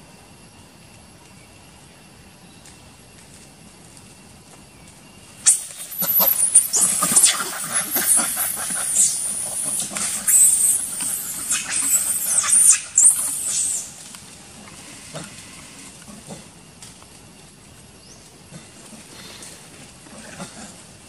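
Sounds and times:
monkeys screaming: 5.4 - 14.0.

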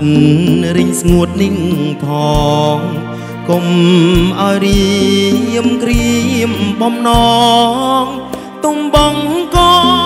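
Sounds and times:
drum kit: 0.0 - 10.0
man singing: 0.0 - 10.0.

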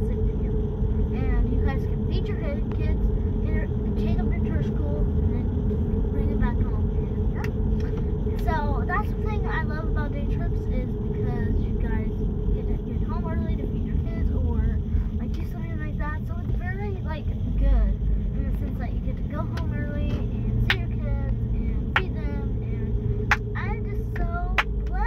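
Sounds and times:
child talking: 0.0 - 5.5, 6.1 - 7.6, 8.3 - 25.0
car engine and road noise: 0.0 - 25.0.

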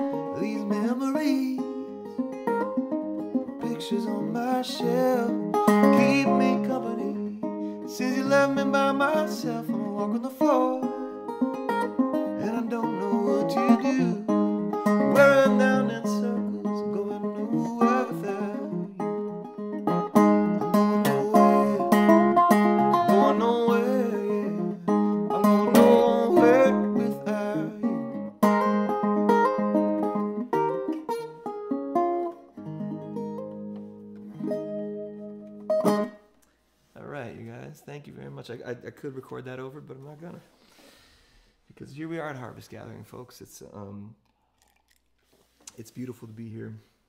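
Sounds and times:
acoustic guitar folk-blues: 0.0 - 37.1.

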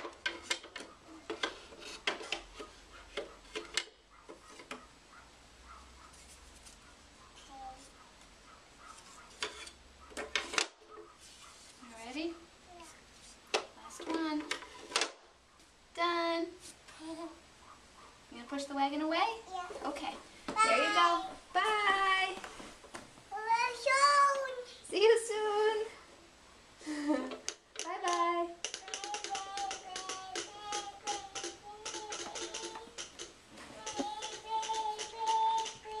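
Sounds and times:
child singing: 23.3 - 24.6, 28.8 - 33.0, 33.8 - 36.0.

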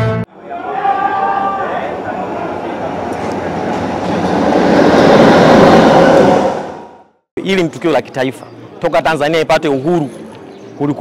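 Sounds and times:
train wheels rushing on rail: 0.9 - 7.1.

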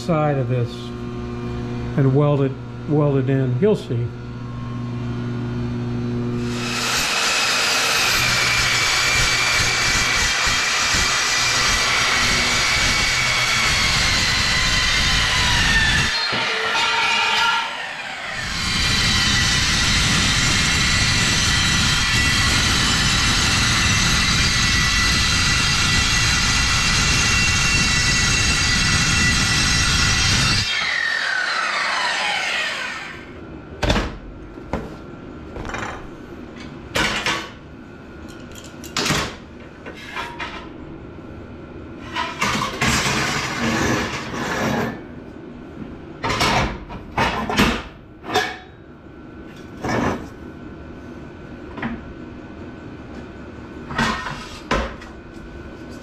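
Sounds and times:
circular saw cutting steel: 6.4 - 33.4.

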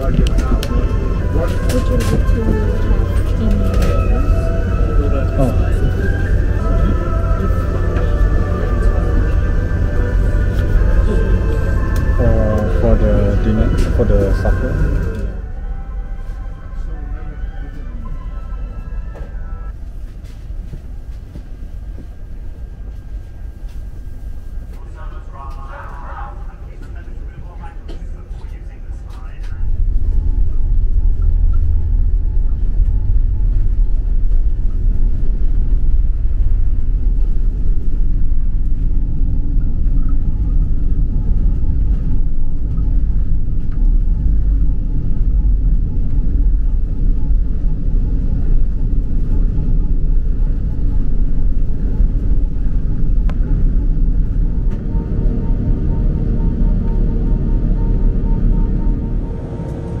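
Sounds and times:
jet engines rumbling in cabin: 0.0 - 60.0.

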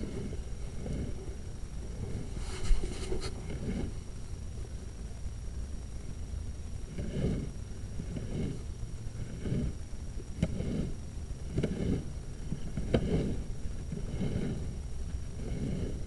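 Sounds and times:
faint high whine: 0.0 - 16.0
cable scraping in drain pipe: 1.9 - 4.0, 11.5 - 14.8, 15.4 - 16.0.

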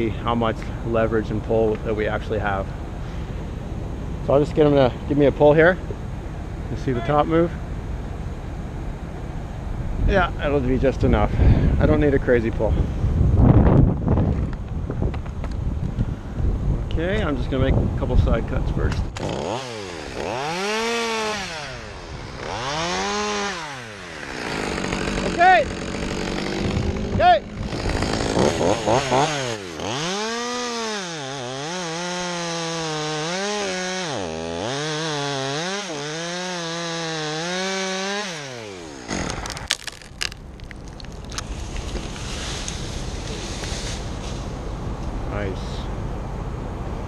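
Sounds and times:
chainsaw revving and cutting: 19.2 - 40.4
wood cracking: 36.8 - 42.8.

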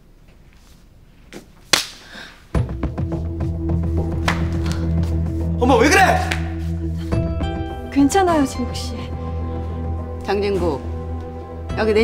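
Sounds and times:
open-hand slap across a face: 1.7 - 2.0, 4.2 - 5.2.

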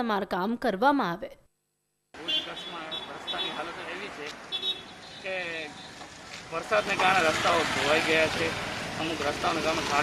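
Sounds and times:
man speaking: 2.2 - 4.3
street traffic passing: 2.2 - 10.0
motor scooters going by: 3.2 - 10.0.

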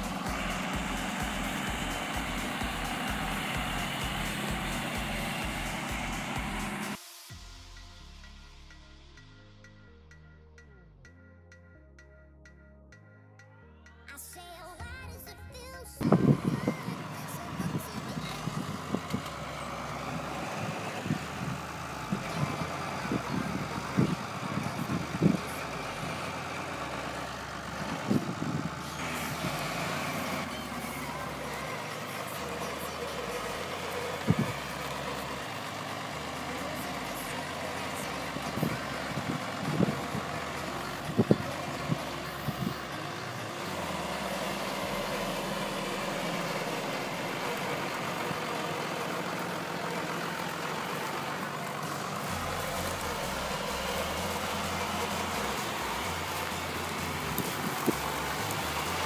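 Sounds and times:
tractor engine running: 0.0 - 9.6, 14.2 - 59.0.

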